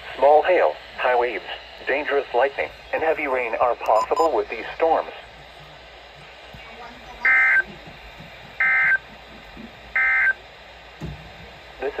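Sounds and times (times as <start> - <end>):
alert data tone bursts: 3.8 - 4.4, 7.2 - 7.7, 8.6 - 9.1, 10.0 - 10.4.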